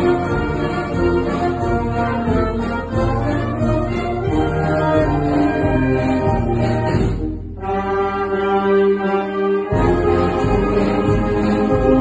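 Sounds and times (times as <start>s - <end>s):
wind band playing a march: 0.0s - 12.0s.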